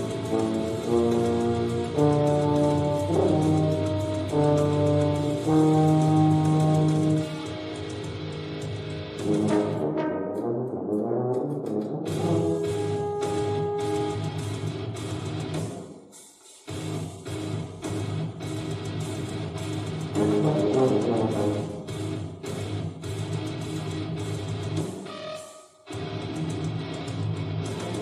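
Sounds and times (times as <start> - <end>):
french horn: 0.0 - 7.9, 9.2 - 14.4, 20.2 - 21.9
tuba: 0.0 - 15.8, 20.1 - 22.2.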